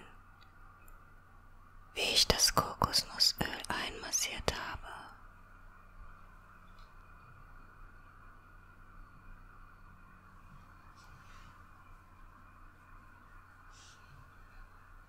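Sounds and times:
faint steady hiss: 0.0 - 15.0
woman whispering: 2.0 - 5.2.

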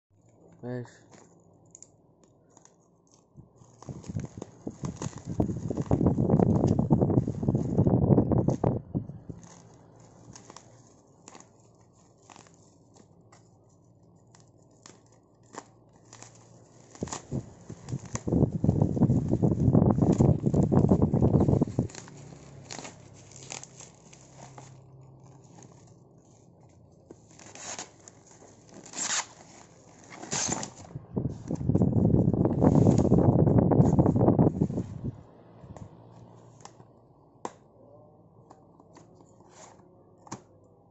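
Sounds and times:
plastic wrapping crinkling: 2.3 - 33.3
plastic tearing and rustling: 2.4 - 13.6, 14.2 - 34.1.

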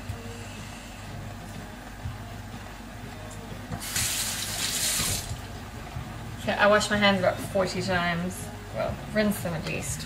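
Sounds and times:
tap water running: 3.7 - 5.5.

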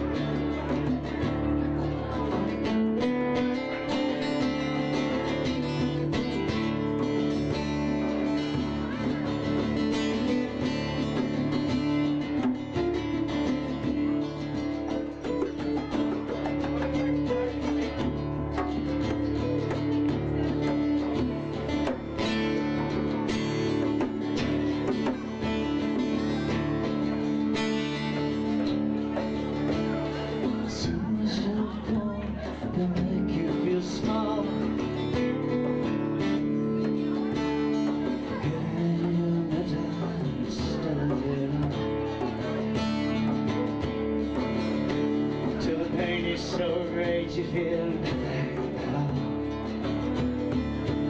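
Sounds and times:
acoustic guitar strumming: 0.0 - 51.0
hand drum: 0.0 - 51.0.

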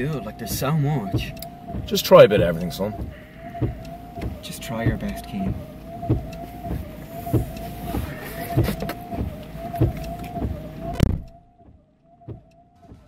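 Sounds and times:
car engine hum from cabin: 0.0 - 13.0
low regular ticking: 0.0 - 13.0.

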